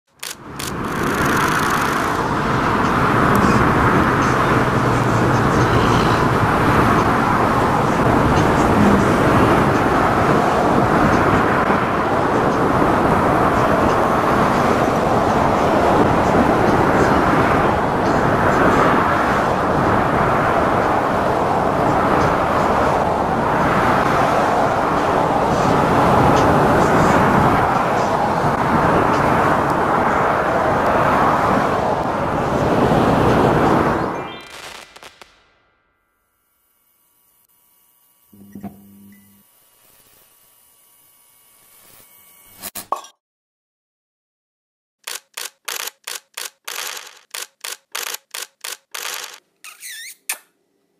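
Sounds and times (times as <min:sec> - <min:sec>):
loud outdoor background noise: 0:00.1 - 0:35.7, 0:45.0 - 0:49.5
indistinct voices: 0:03.4 - 0:10.2.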